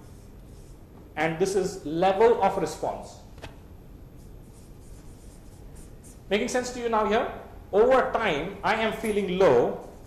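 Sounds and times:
marker scratching on paper: 0:00.0 - 0:00.8, 0:04.2 - 0:06.3.

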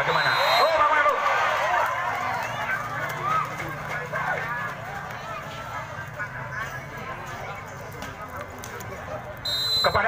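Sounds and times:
crowd shouting: 0:00.0 - 0:07.4.

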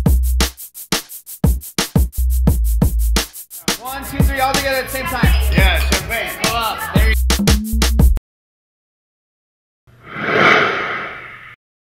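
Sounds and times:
whooshing sound effect: 0:10.0 - 0:11.6.

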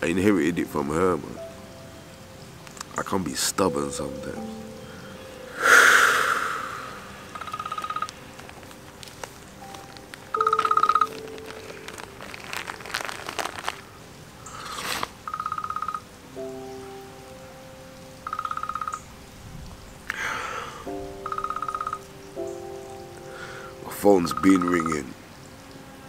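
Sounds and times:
soft background music: 0:00.0 - 0:26.0
breathy rush: 0:04.8 - 0:07.6, 0:20.1 - 0:21.0
telephone ringtone trilling: 0:07.3 - 0:08.1, 0:10.3 - 0:11.4, 0:15.3 - 0:16.1, 0:18.2 - 0:19.0, 0:21.2 - 0:22.0, 0:24.3 - 0:25.0.

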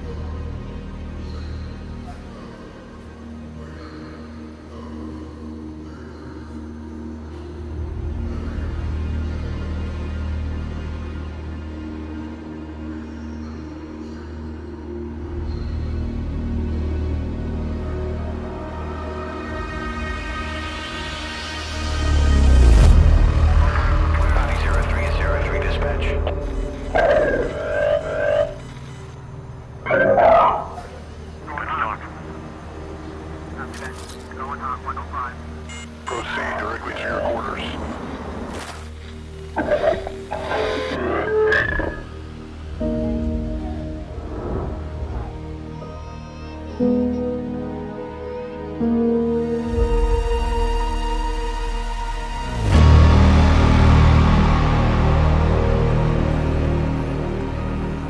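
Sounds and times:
deep low drone: 0:00.0 - 0:29.9, 0:48.9 - 0:58.0
distorted radio voice: 0:24.1 - 0:28.6, 0:29.9 - 0:32.2, 0:33.6 - 0:38.1, 0:39.6 - 0:42.0.

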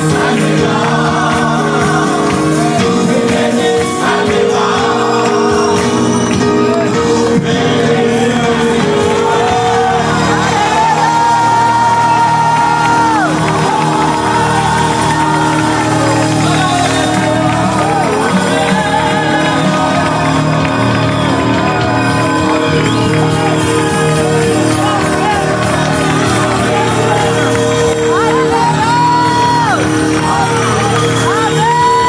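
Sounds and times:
congregation calling out: 0:00.0 - 0:32.0
congregation clapping: 0:00.0 - 0:32.0
electric keyboard: 0:00.0 - 0:32.0
men singing into microphones: 0:00.0 - 0:32.0.

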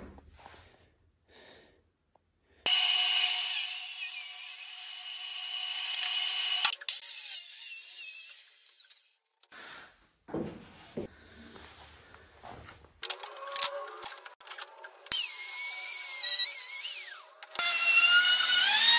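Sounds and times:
circular saw whine: 0:02.7 - 0:06.8.

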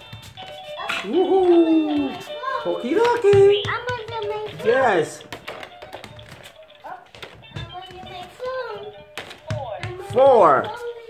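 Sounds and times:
plastic balls knocking: 0:02.8 - 0:10.5.

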